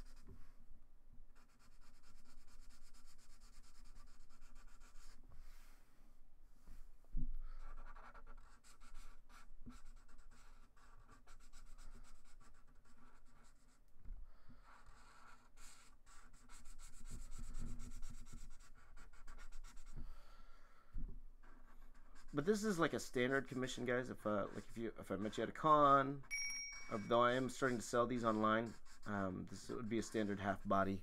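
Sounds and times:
marker drawing on paper: 0.0 - 0.3, 1.4 - 5.5, 7.4 - 20.2, 21.4 - 31.0.

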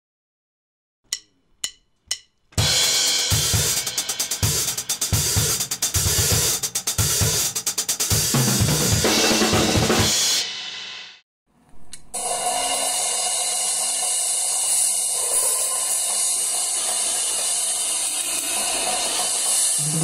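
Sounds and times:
drum kit playing: 1.1 - 11.2, 11.8 - 20.0.

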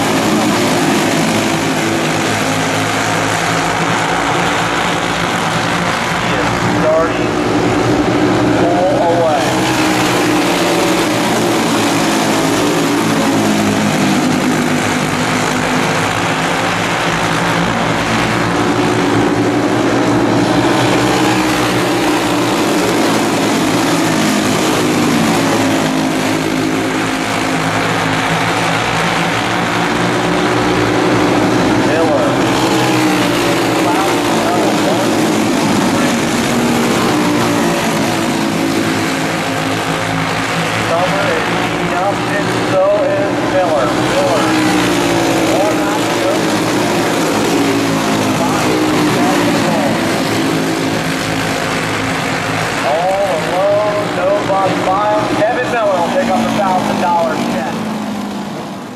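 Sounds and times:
kart engines racing: 0.0 - 58.9.

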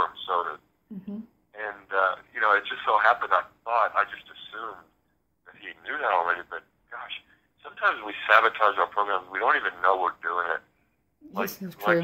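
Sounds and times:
person talking: 0.0 - 4.8, 5.6 - 10.6, 11.2 - 12.0.

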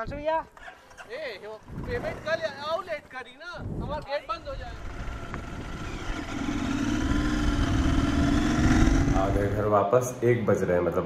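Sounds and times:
motorcycle engine running: 4.5 - 9.7.

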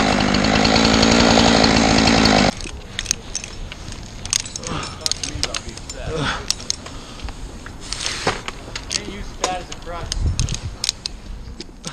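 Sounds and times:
metal climbing hardware clinking: 2.5 - 7.0, 8.7 - 11.8.

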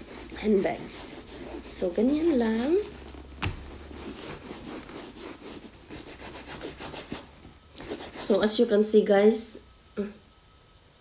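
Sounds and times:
wipe scrubbing a leather bag: 0.0 - 8.6.

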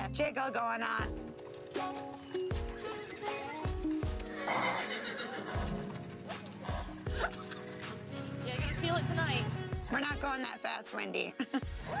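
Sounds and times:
music with steady beat: 1.0 - 12.0
horse whinnying: 2.3 - 8.2.

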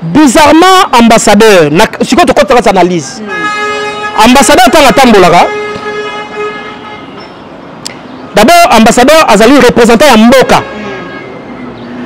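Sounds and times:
vehicle horn long note: 3.3 - 7.2.

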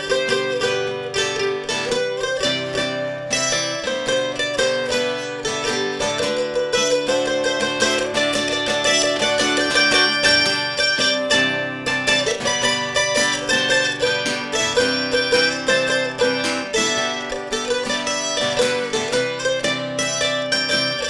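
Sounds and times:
acoustic guitar chords: 0.0 - 21.0
fast picked mandolin: 0.0 - 21.0.

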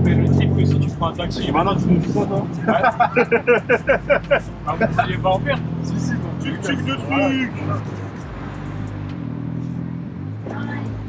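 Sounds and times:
auto rickshaw engine running: 0.0 - 11.0
road and traffic noise: 0.0 - 11.0.

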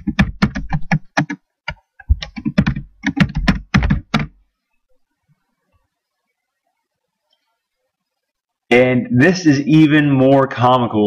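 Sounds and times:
keyboard typing: 0.0 - 4.4.

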